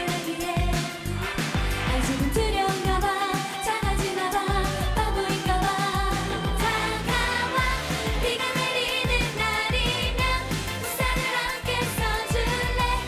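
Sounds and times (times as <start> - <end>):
dance backing track: 0.0 - 13.0
kick drum beat: 1.6 - 3.1, 3.8 - 8.4, 12.0 - 13.0
women singing into microphones: 1.9 - 13.0.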